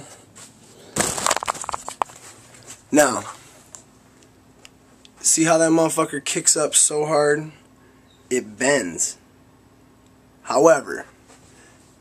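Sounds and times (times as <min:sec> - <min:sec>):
camera handling rustle and clicks: 0:01.1 - 0:02.7.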